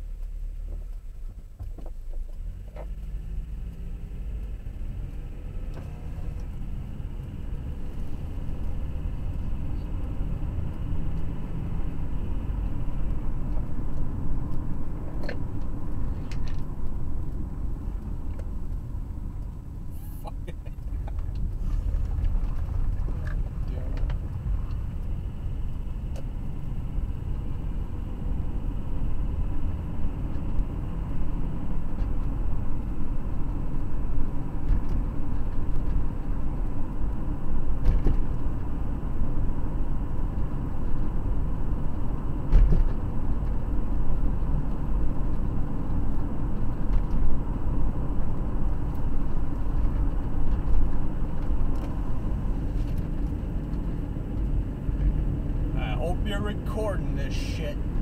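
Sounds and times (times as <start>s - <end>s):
car interior rumble: 0.0s - 58.0s.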